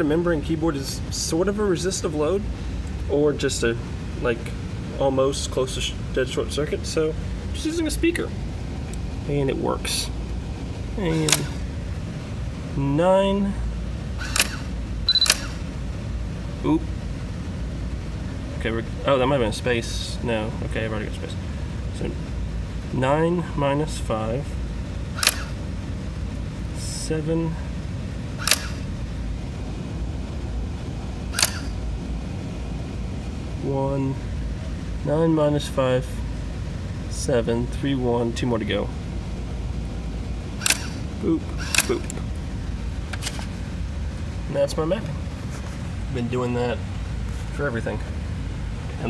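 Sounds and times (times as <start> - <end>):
steady low hum: 0.0 - 49.0
typewriter mechanical clack: 11.2 - 11.6, 14.2 - 15.6, 25.2 - 25.6, 28.4 - 28.8, 31.4 - 31.7, 40.6 - 41.0, 41.6 - 42.2
high electronic beep: 15.1 - 15.6
sharp click from small speaker: 28.4 - 28.8.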